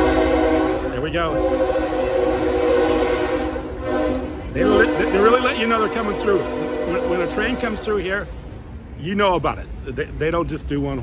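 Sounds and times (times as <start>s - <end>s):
train horn chord: 0.0s - 8.0s
train rumbling past: 0.0s - 11.0s.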